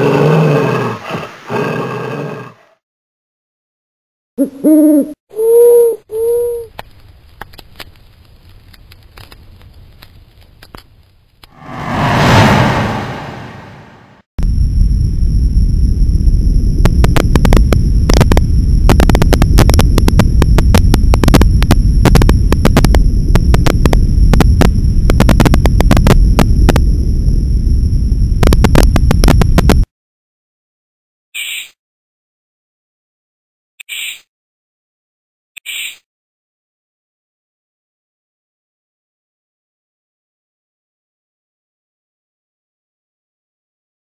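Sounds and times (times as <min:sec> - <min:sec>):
owl hooting: 0:04.4 - 0:06.7, 0:31.4 - 0:31.7, 0:33.9 - 0:34.2, 0:35.6 - 0:36.0
campfire crackling and popping: 0:06.7 - 0:11.5, 0:16.9 - 0:26.8.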